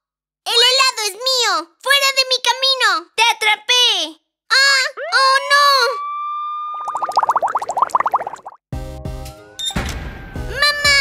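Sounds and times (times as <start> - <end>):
background music: 8.8 - 11.0.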